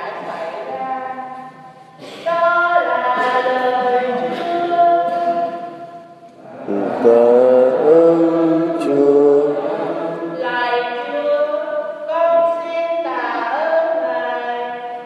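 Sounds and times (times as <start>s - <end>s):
choir singing a hymn: 6.4s - 11.2s.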